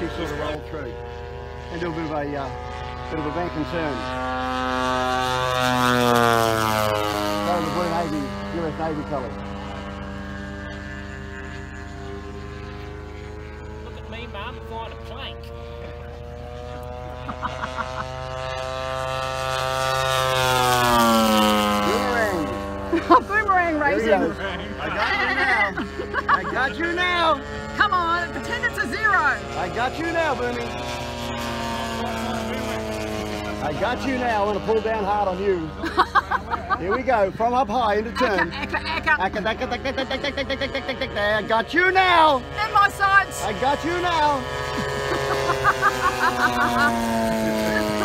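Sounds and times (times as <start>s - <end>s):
model airplane engine droning: 0.0s - 48.0s.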